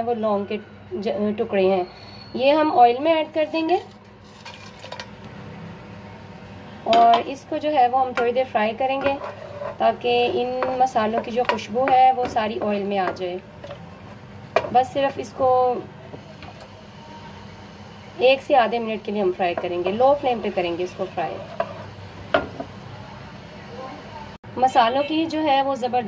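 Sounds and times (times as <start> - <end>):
spices sizzling in oil: 6.9 - 22.9.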